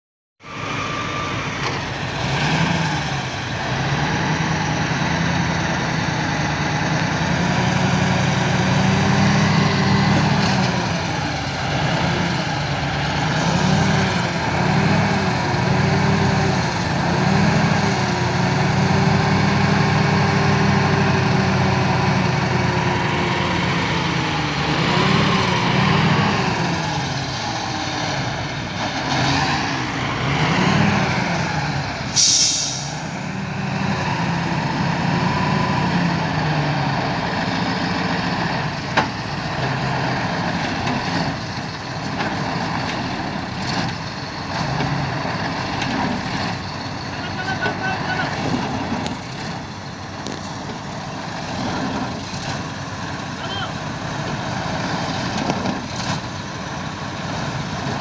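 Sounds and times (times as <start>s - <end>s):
truck diesel engine revving: 0.4s - 58.0s.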